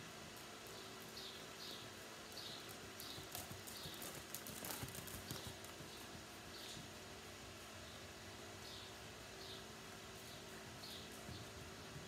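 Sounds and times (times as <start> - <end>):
horse hoofbeats on sand: 2.4 - 7.0.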